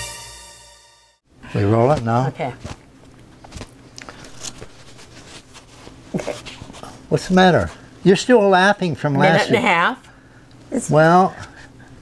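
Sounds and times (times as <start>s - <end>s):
soft brushes: 4.2s - 7.0s.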